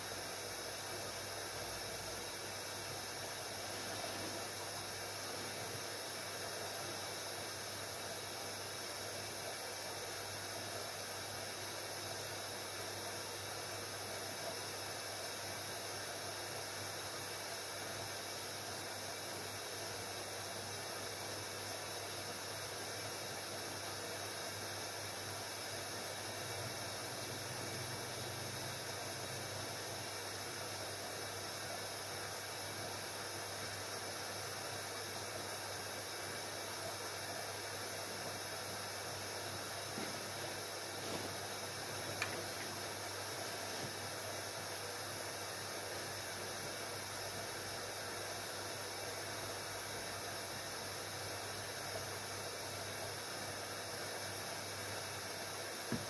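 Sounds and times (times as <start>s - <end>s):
constant hiss: 0.0s - 56.0s
washing machine humming: 36.4s - 50.2s.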